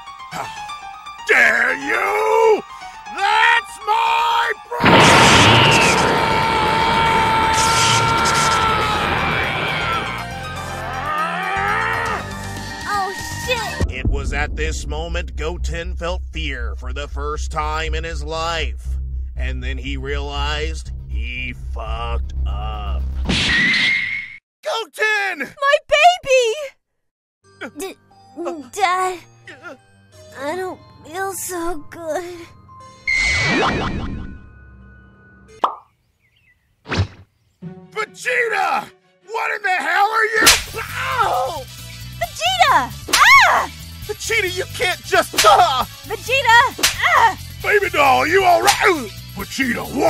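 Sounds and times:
background music: 0.0s - 23.1s, 27.5s - 35.7s, 37.6s - 50.0s
cartoon sudden burst: 4.8s - 8.5s
cartoon pop sound effect: 35.6s - 35.9s.

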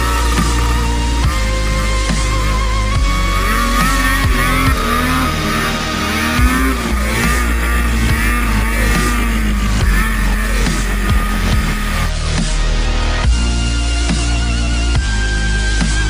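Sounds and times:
background music: 0.0s - 16.0s
snowmobile engine revving: 0.0s - 16.0s.

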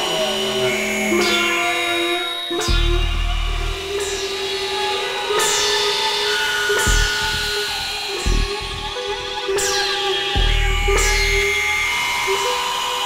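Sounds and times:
deep bass pulses: 2.6s - 4.3s, 6.8s - 9.3s, 10.4s - 12.0s
synthesizer drone tones: 2.6s - 4.8s, 6.8s - 9.7s.

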